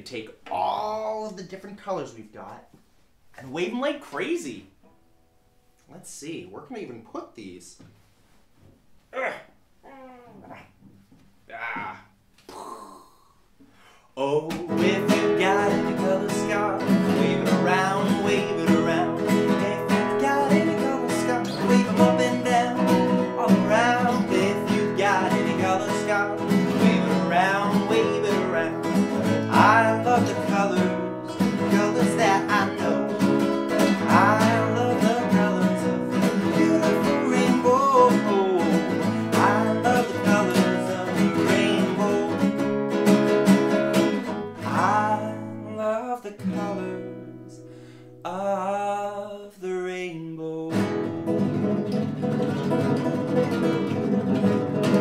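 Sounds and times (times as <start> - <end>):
man singing: 14.2 - 42.7, 44.6 - 47.6, 48.2 - 51.2
classical guitar strummed: 14.6 - 48.2, 50.7 - 55.0.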